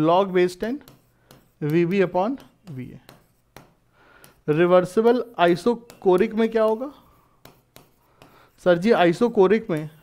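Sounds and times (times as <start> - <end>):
stylus tapping and scratching: 0.0 - 10.0.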